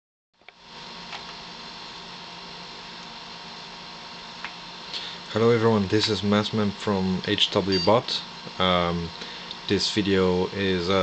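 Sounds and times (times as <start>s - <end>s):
cooling unit whirring: 0.4s - 11.0s.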